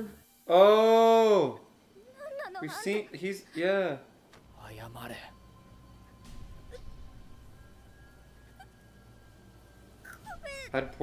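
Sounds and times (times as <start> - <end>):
low hum: 4.1 - 11.0.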